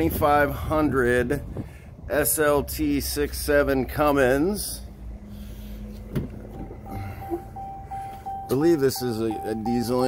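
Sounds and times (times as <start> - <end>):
car door warning chime: 6.6 - 10.0.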